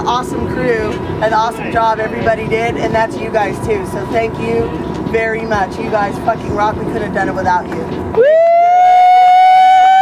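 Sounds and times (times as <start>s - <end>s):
person whooping: 8.2s - 10.0s.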